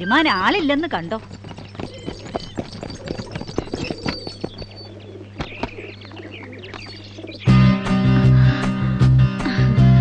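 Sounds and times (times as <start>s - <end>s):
horse hooves clopping: 0.0s - 7.4s
dove cooing: 0.0s - 7.8s
birds chirping: 0.0s - 9.8s.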